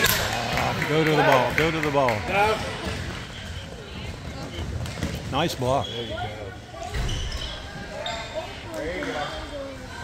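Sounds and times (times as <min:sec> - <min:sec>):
voices echoing in gym: 0:00.0 - 0:10.0.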